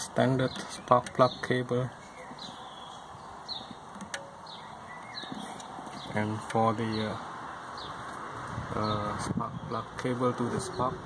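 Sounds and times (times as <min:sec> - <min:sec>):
bird chirping: 0:00.0 - 0:08.2.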